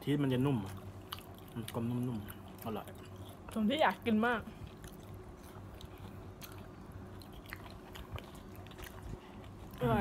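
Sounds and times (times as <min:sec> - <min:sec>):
chewing crunchy food: 0:00.0 - 0:10.0
low steady hum: 0:00.0 - 0:10.0.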